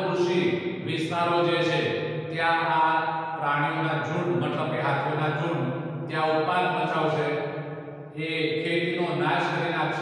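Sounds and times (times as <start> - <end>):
man reading aloud: 0.0 - 7.4, 8.2 - 10.0.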